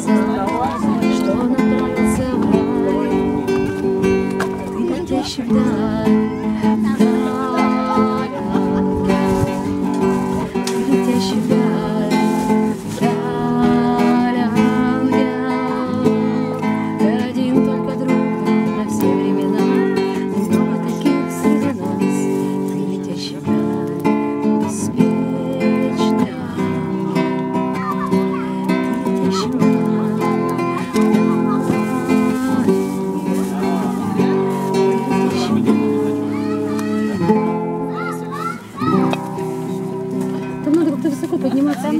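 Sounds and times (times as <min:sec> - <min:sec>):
woman singing: 0:00.0 - 0:36.3, 0:40.4 - 0:41.9
acoustic guitar strumming: 0:00.0 - 0:41.9.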